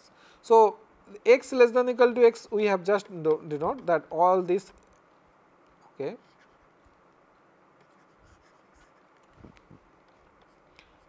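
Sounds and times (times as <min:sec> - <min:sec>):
stylus strokes on tablet: 0:05.8 - 0:06.8, 0:07.8 - 0:11.0.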